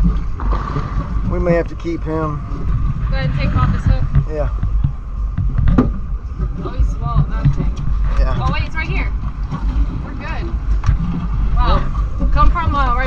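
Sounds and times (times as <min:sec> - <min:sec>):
wind rumble on microphone: 0:00.0 - 0:13.0
muffled voices: 0:01.3 - 0:02.4, 0:06.6 - 0:09.1.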